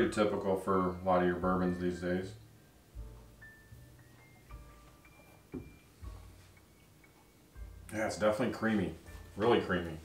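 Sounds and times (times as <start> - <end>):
faint music of held tones: 0.0 - 10.0
glass set down on mat: 5.5 - 5.8
soft knock: 5.5 - 5.8.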